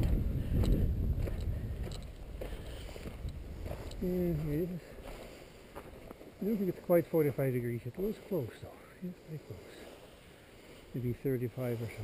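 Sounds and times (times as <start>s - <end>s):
wind rumble on microphone: 0.0s - 4.7s
footsteps in snow: 0.0s - 12.0s.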